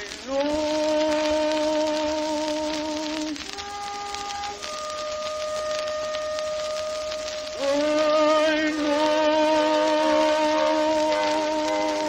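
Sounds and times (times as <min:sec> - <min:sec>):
record surface crackle and hiss: 0:00.0 - 0:12.0.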